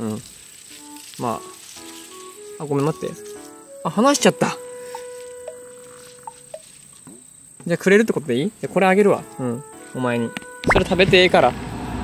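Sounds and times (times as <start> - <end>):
insects singing: 0.0 - 11.0.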